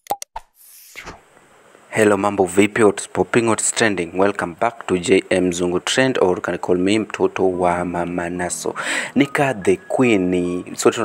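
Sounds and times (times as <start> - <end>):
brief high hiss: 0.6 - 1.2.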